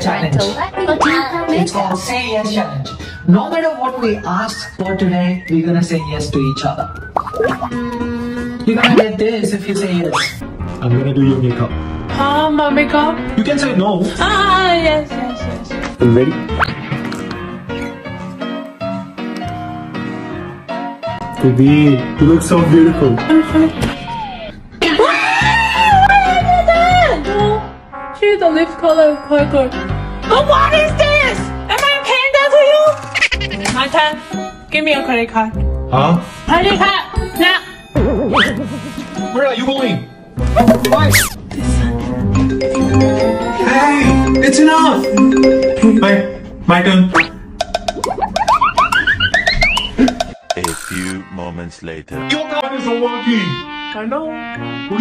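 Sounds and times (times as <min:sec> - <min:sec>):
background music with bass: 0:04.3 - 0:24.4, 0:38.0 - 0:55.0
upward pitch swoops: 0:06.0 - 0:08.0, 0:08.8 - 0:09.2, 0:40.6 - 0:41.4, 0:47.1 - 0:50.1
woman screaming: 0:24.0 - 0:27.2
quick ticking beat: 0:47.6 - 0:51.1.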